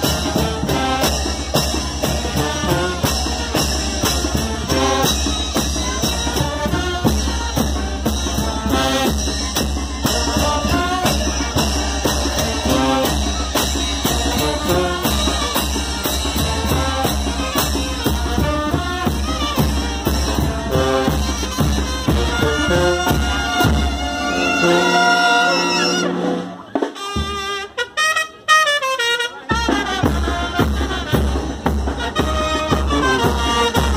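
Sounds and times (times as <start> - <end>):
bass drum beat: 0.0 - 24.2
brass band playing: 0.0 - 33.9.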